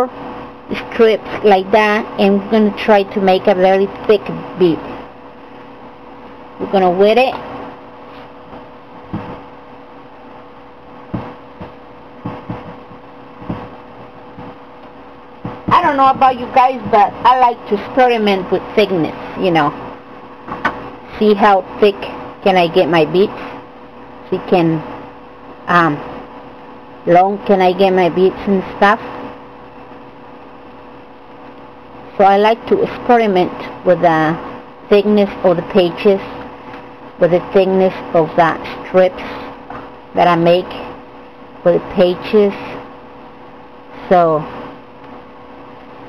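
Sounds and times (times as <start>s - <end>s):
electrical hum: 0.0s - 46.0s
faint constant tone: 0.0s - 46.0s
knocks on a tabletop: 9.1s - 9.4s, 11.1s - 13.7s.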